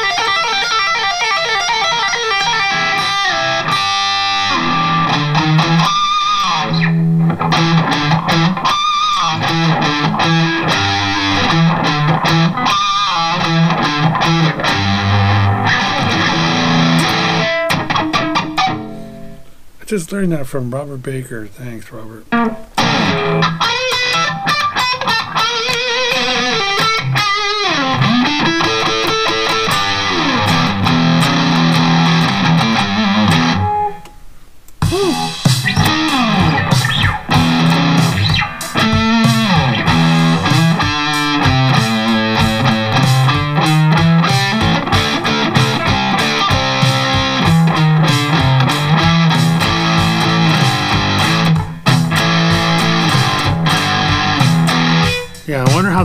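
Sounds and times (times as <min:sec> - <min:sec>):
distorted electric guitar riffing: 0:00.0 - 0:20.2, 0:21.0 - 0:34.2, 0:34.8 - 0:56.0
drum backing track: 0:07.3 - 0:19.1, 0:34.7 - 0:56.0.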